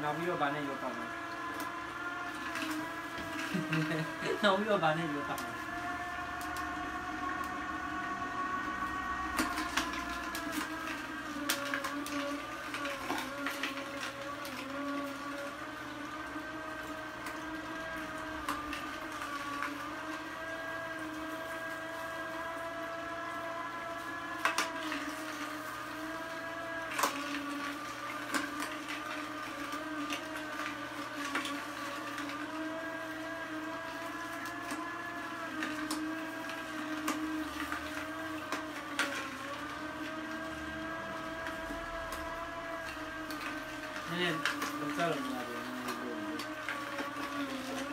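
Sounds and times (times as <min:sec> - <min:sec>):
juicer motor hum: 0:00.0 - 0:47.9.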